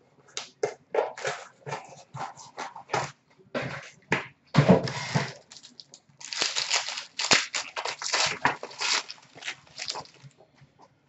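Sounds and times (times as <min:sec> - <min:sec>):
trading cards rustling and crinkling: 0:04.8 - 0:10.4.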